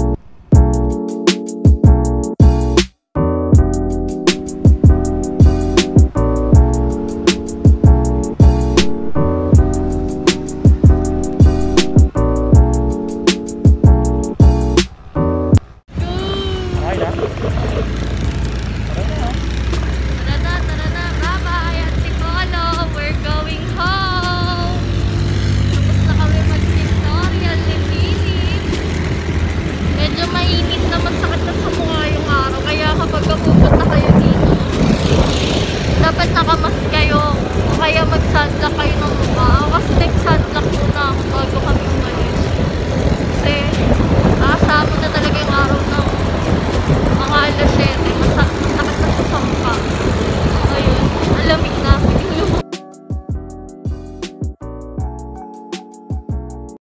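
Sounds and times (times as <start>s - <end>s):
motorcycle engine running: 15.6s - 52.6s
voices talking: 16.0s - 24.8s, 47.1s - 52.6s
wind buffeting microphone: 25.6s - 52.6s.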